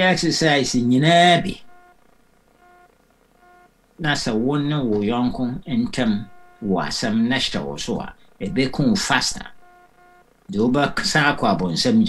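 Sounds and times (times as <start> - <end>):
low room noise: 0.0 - 12.0
faint electronic beeps: 0.6 - 12.0.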